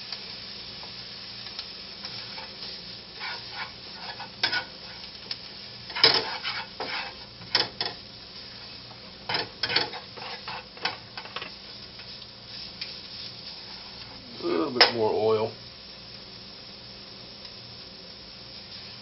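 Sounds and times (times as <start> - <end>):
vegetables sizzling in a frying pan: 0.0 - 19.0
spatula scraping and knocking pan: 2.0 - 5.1, 5.9 - 8.0, 9.3 - 11.6.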